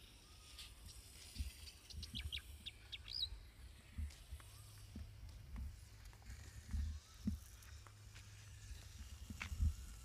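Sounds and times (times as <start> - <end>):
birds chirping: 0.1 - 5.4.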